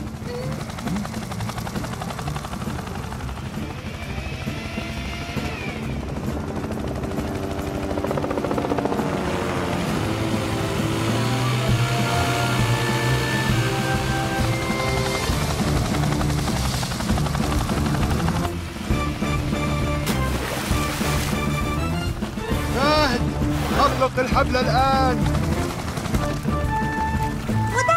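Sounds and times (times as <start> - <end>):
background music: 0.0 - 27.9
helicopter rotor chopping: 0.0 - 27.9.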